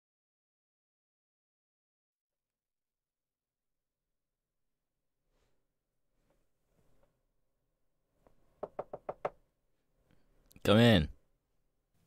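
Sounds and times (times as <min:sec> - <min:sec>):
knocks on a door: 0:08.6 - 0:09.4.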